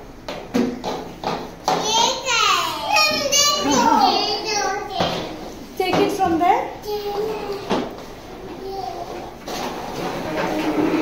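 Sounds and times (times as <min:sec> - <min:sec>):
children moving about: 0:07.0 - 0:11.0.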